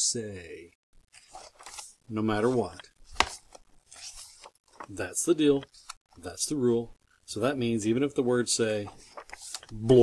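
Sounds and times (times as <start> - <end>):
book page turning: 1.1 - 6.0, 8.7 - 10.0.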